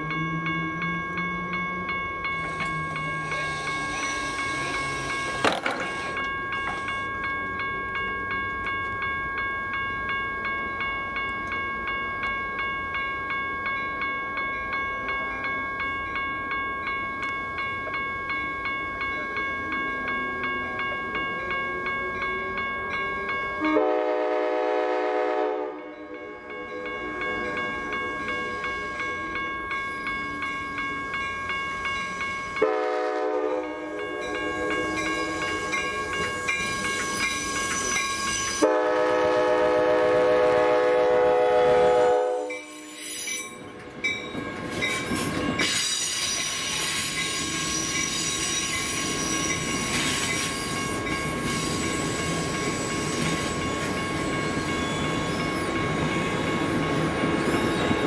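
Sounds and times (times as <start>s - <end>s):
train cars rolling rumble: 0.0s - 9.0s
crossing warning bell ringing: 0.0s - 58.0s
train horn blasts: 23.6s - 26.4s, 32.6s - 35.7s, 38.5s - 43.1s
train wheels clicking: 42.5s - 58.0s.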